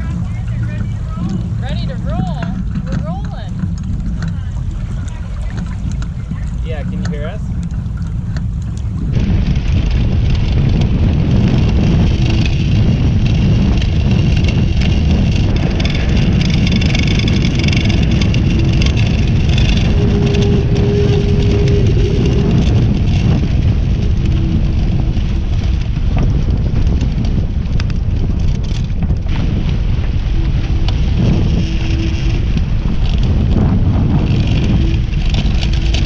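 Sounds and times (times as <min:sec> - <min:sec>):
faint voices: 0:00.0 - 0:07.6
water rushing along hull: 0:00.0 - 0:36.0
wind rumbling on microphone: 0:00.0 - 0:36.0.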